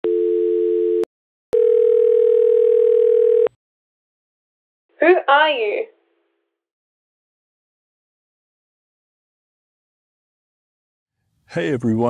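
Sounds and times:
telephone dial tone: 0.0 - 3.6
telephone ringing tone: 0.0 - 3.6.

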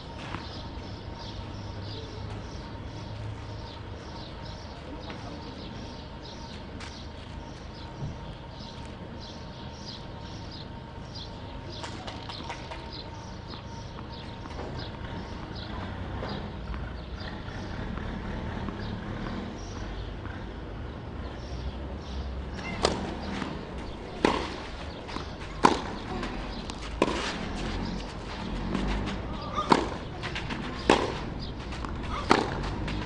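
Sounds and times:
birds chirping: 0.0 - 33.0
outdoor ambience: 0.0 - 33.0
tennis ball struck by racket: 22.6 - 33.0.

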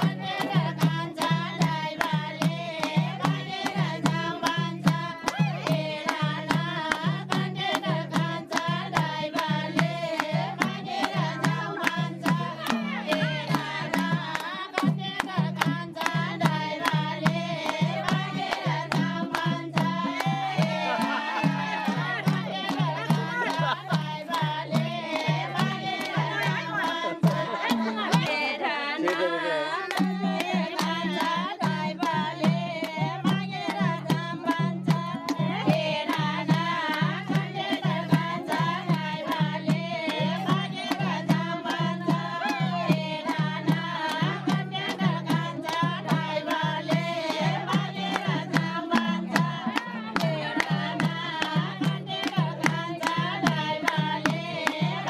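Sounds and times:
hand drum beat: 0.0 - 29.2, 29.8 - 55.0
voices singing folk song: 0.0 - 55.0.

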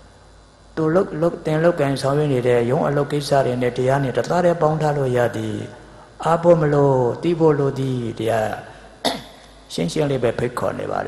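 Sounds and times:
man speaking into a microphone: 0.8 - 8.8, 9.7 - 11.0
man clearing his throat: 9.0 - 9.4.

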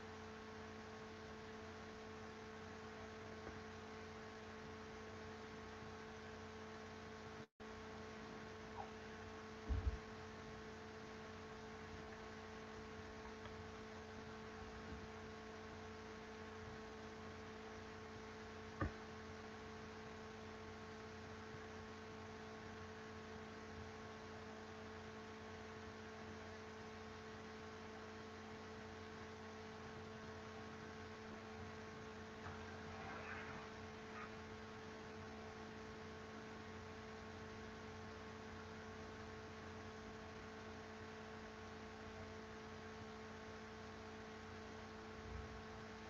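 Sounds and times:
low electrical hum: 0.0 - 46.0
soft low thumps: 9.6 - 10.1.

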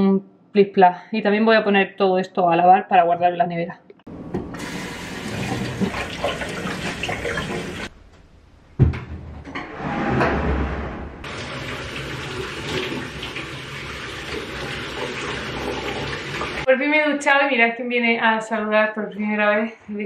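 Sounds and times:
shower running: 4.5 - 7.9, 11.2 - 16.7
thump: 8.8 - 11.2.

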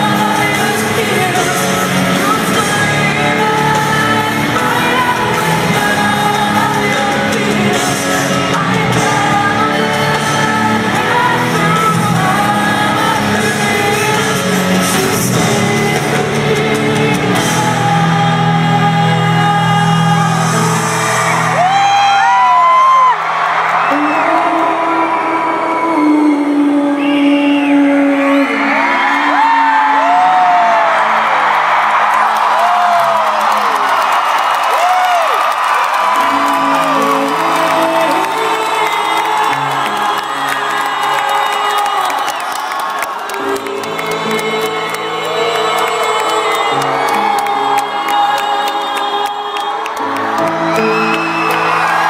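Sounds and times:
live band sustained chords: 0.0 - 52.0
crowd cheering and whooping: 17.6 - 52.0
whistles: 26.9 - 28.6, 50.7 - 51.9.

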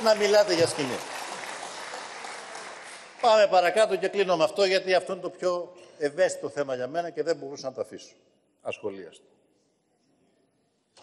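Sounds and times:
applause: 0.0 - 4.2.

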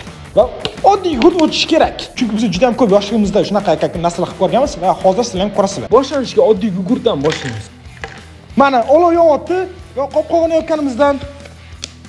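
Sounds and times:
background music: 0.0 - 12.0
man talking and exclaiming: 0.3 - 7.7, 8.5 - 11.4.

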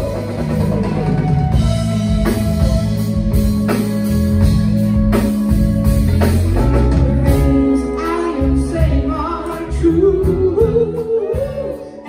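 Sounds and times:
soul band playing: 0.0 - 12.0.

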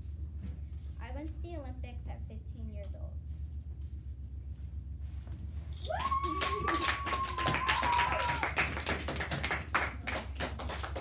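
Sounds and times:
low steady hum: 0.0 - 11.0
people clapping: 5.9 - 11.0.

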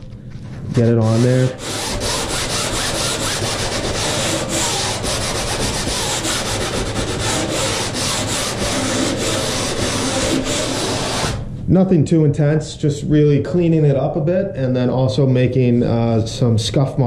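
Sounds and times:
sandpaper rasping on fiberglass: 0.8 - 11.4.

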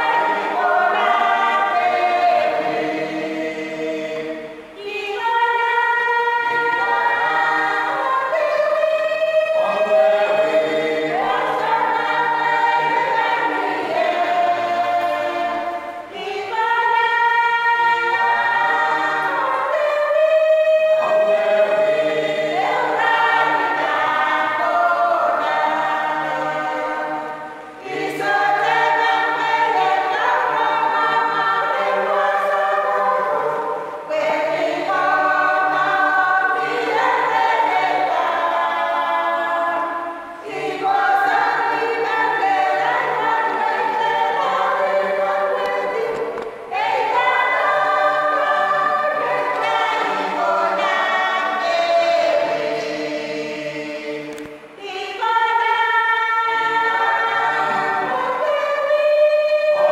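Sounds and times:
choir singing a hymn unaccompanied: 0.0 - 59.9.

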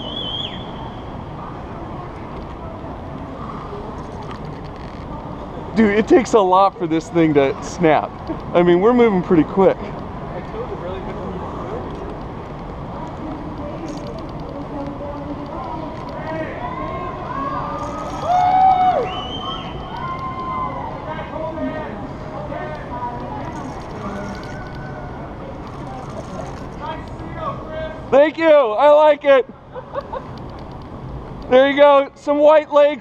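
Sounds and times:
distant voices talking: 0.0 - 29.8
outdoor background noise: 0.0 - 33.0.

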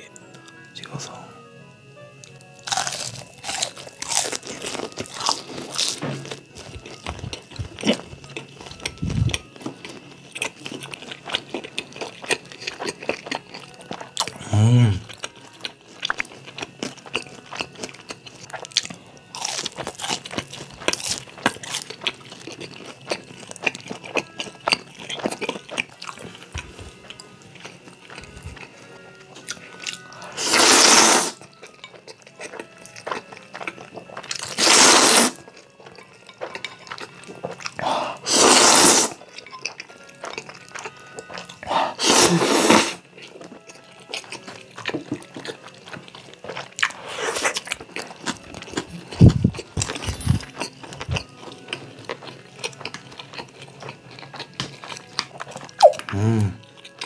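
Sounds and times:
crunching and chewing fried food: 2.2 - 57.0
slurping noodles: 30.3 - 31.4, 34.5 - 35.4, 37.8 - 39.2, 41.6 - 43.0, 46.9 - 47.7.

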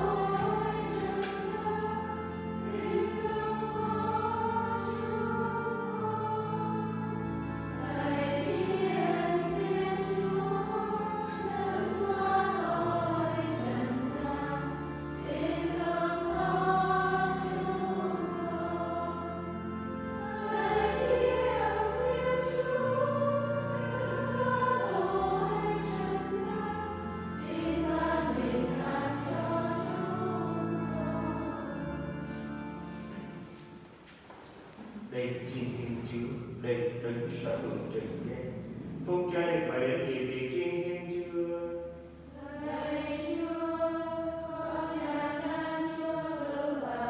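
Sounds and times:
choir singing a hymn: 0.0 - 33.9, 34.8 - 47.0
low sustained accompaniment chords: 0.0 - 34.1, 34.7 - 47.0.

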